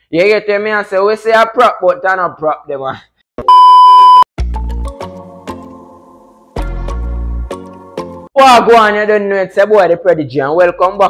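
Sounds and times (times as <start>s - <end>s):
electronic beep tone: 3.4s - 4.3s.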